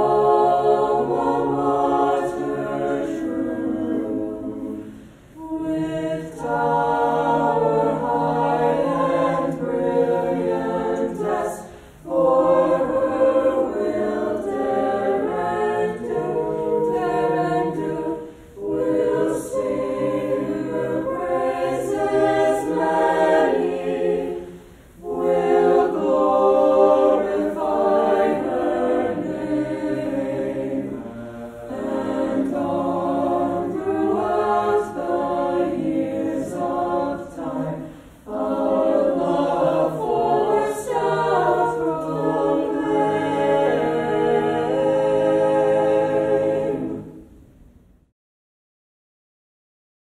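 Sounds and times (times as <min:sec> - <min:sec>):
mixed choir singing a cappella: 0:00.0 - 0:47.5.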